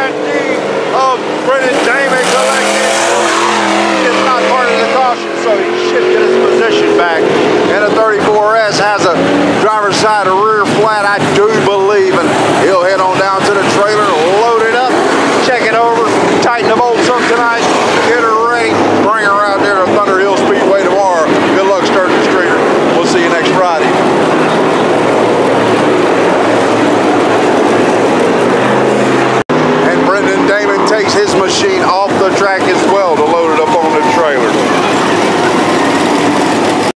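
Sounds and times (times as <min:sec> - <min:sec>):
car engine approaching close: 0:00.0 - 0:36.9
people's voices: 0:00.0 - 0:36.9
race car engines running slowly: 0:00.0 - 0:36.9.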